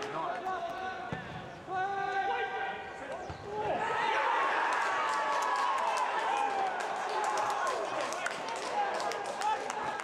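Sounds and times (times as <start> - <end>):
players shouting: 1.7 - 8.7.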